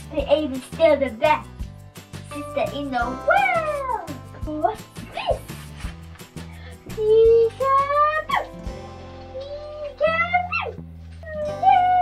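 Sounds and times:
background music with beat: 0.0 - 10.1
child singing wordless notes: 2.3 - 5.5, 6.9 - 12.0
child squealing: 9.8 - 12.0.

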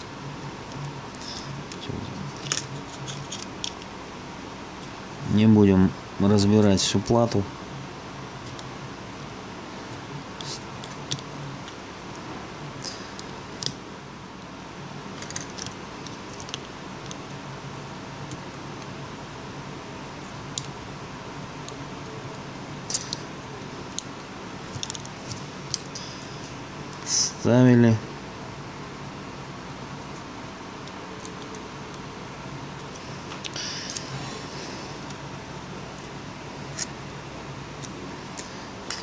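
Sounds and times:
low background hum: 0.0 - 39.0.

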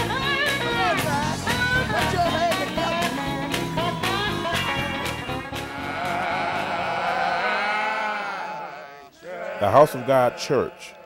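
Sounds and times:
band playing: 0.0 - 7.4
choir holding a sung note: 5.6 - 10.6.

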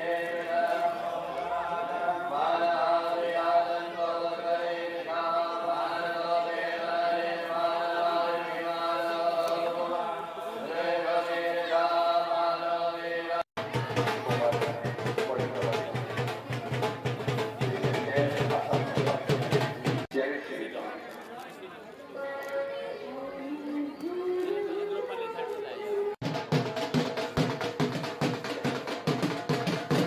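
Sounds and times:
devotional chanting: 0.0 - 20.0
fast temple drum strokes: 13.6 - 20.1, 26.2 - 30.0.

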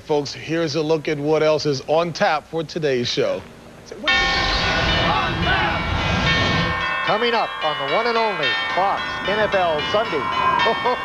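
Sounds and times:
horn-like chord: 4.0 - 11.0
low rumble: 4.1 - 7.6.

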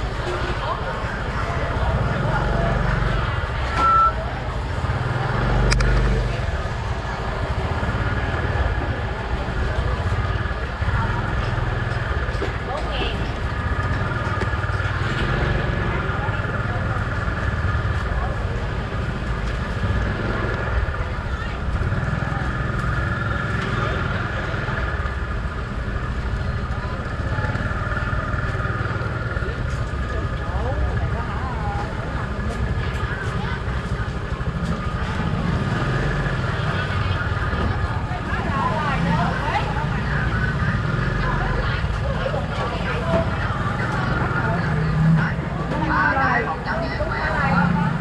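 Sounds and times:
market voices: 0.0 - 48.0
motorbike traffic rumble: 0.0 - 48.0
people chatting: 0.0 - 48.0.

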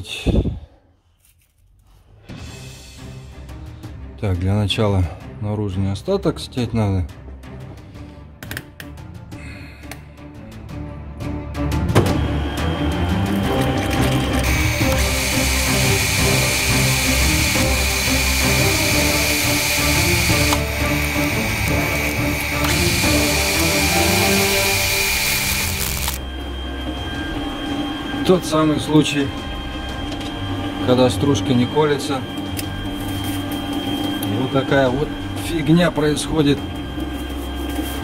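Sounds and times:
high-pitched cutting whine: 14.2 - 38.0
metal lathe running: 14.3 - 35.7.

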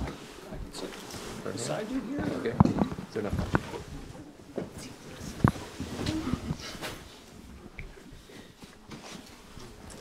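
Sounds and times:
faint rustling: 0.0 - 10.0.

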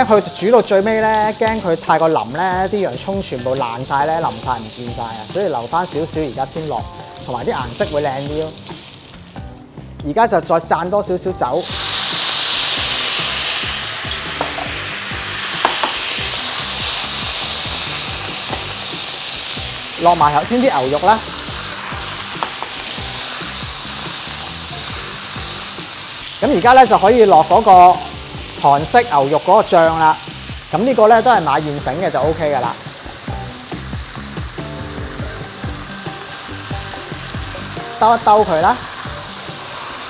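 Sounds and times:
vegetables frying sizzle: 0.0 - 40.0
sauce being poured: 11.6 - 26.4
music with plucked notes: 32.3 - 38.0.

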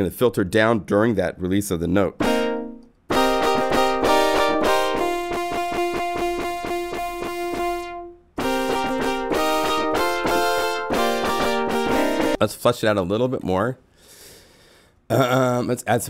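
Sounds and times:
synthesizer notes: 2.2 - 12.4.

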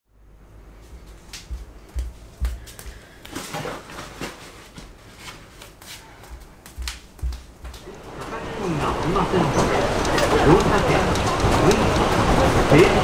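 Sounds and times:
low thumps: 0.9 - 3.0.

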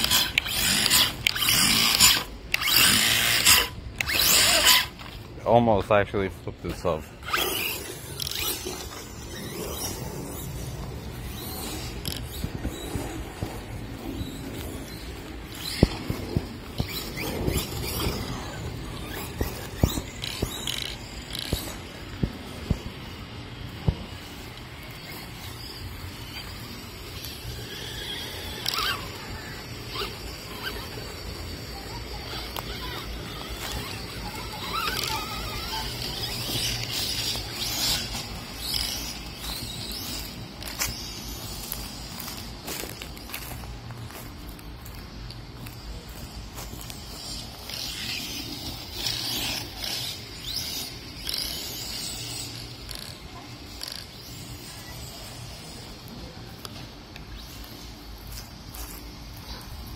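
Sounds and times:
electric motor whining: 0.0 - 5.3, 7.1 - 59.6.

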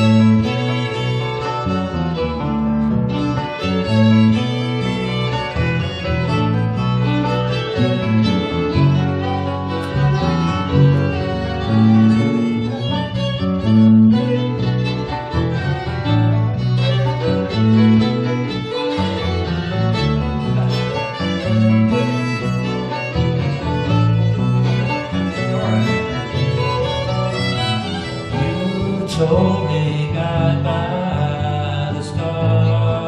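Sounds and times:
bass line: 0.0 - 33.0
guitar: 0.0 - 33.0
violin solo: 0.0 - 33.0.

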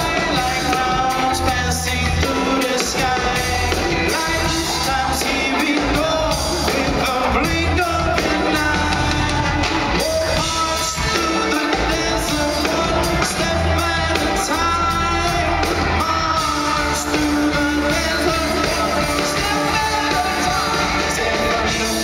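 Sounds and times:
heavy bass: 0.0 - 22.0
live band playing: 0.0 - 22.0
man singing into a microphone: 0.0 - 22.0.

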